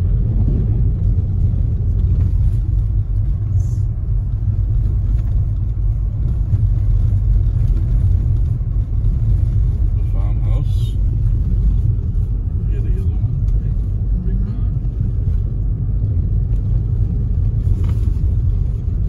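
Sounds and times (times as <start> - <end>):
car engine rumble: 0.0 - 19.0
tyres on snowy road: 0.0 - 19.0.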